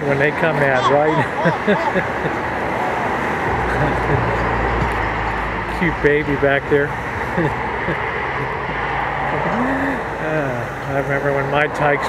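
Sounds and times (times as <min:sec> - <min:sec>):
traffic hiss: 0:00.0 - 0:12.0
murmuring voice: 0:00.5 - 0:04.3, 0:09.4 - 0:10.7
person laughing: 0:00.6 - 0:03.0, 0:03.6 - 0:04.4, 0:07.3 - 0:08.0, 0:09.4 - 0:10.6.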